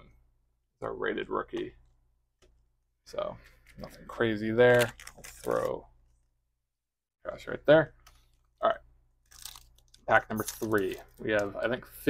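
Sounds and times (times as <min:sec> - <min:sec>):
foil wrapper crinkling: 0:09.3 - 0:11.4.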